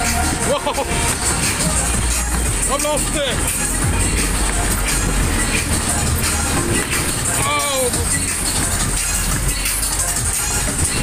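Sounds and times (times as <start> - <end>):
loud fairground music: 0.0 - 11.0
steady low rumble: 0.0 - 11.0.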